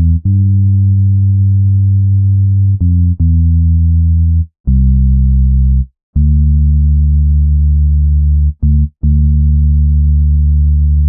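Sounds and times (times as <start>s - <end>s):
deep synth bass note: 0.0s - 11.0s.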